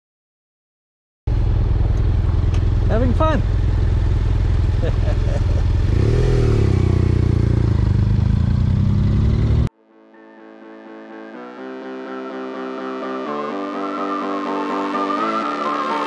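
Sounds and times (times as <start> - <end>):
motorcycle engine running: 1.3 - 9.7.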